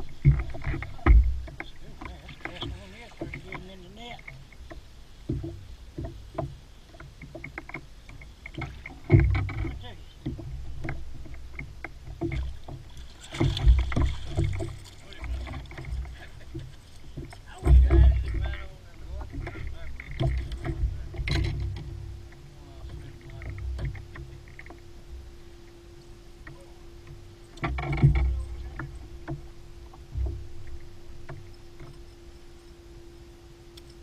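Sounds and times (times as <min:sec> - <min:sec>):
low rumble on microphone: 0:00.0 - 0:06.6, 0:08.7 - 0:34.0
water splashing: 0:00.0 - 0:34.0
knocks and clicks: 0:07.2 - 0:22.0, 0:26.5 - 0:32.0.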